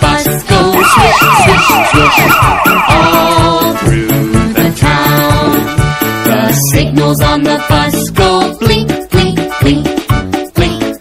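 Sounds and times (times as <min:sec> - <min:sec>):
children's song with steady beat: 0:00.0 - 0:11.0
police siren wailing: 0:00.7 - 0:03.8.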